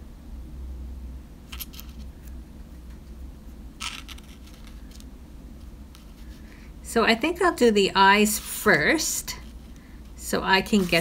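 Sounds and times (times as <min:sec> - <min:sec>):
cardstock pieces clicking and rustling: 0:03.8 - 0:05.1.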